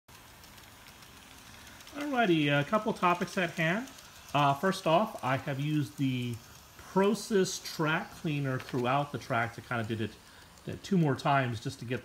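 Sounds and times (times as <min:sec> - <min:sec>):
model train running on rails: 0:00.1 - 0:12.0.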